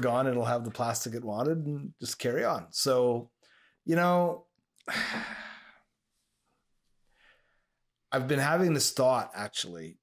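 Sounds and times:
man sighing: 4.8 - 5.9.

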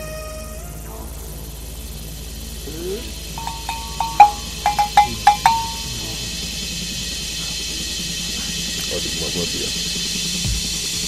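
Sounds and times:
small metal bell ringing: 3.4 - 6.0.

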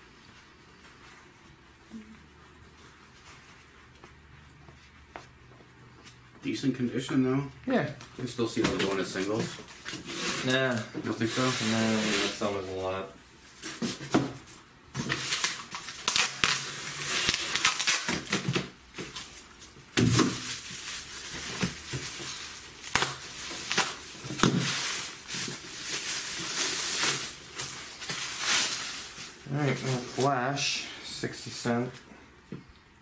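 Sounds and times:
bubble wrap crinkling: 15.0 - 30.7.

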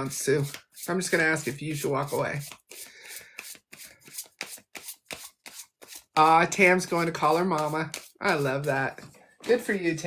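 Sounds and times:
cards being shuffled: 2.4 - 6.3.

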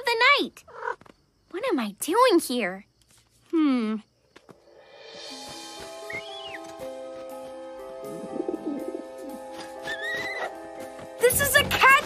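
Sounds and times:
soft held chords: 5.6 - 9.9.

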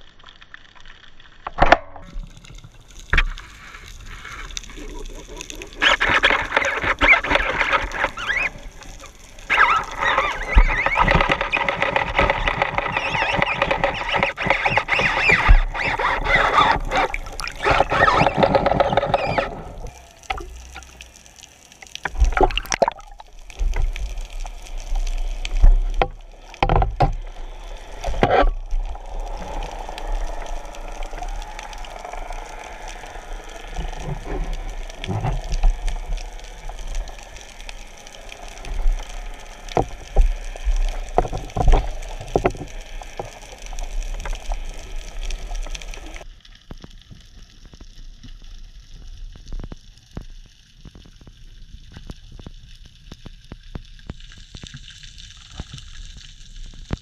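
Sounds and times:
water rushing and gurgling: 1.4 - 46.4
splashes: 2.0 - 46.3.

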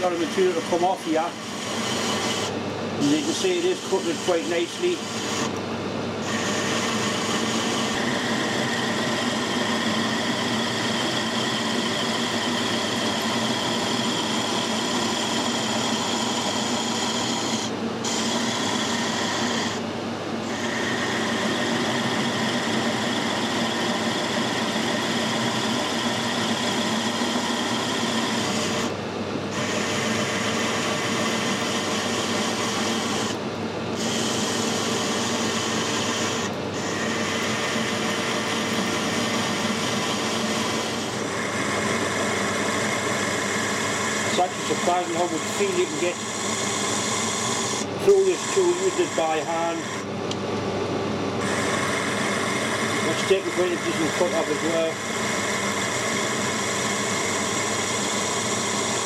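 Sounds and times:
lathe tool scraping cut: 0.0 - 50.2, 51.3 - 59.0
lathe hum: 0.0 - 59.0.

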